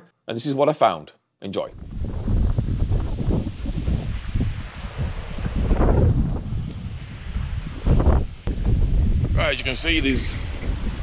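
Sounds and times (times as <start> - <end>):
wind buffeting microphone: 1.7 - 11.0.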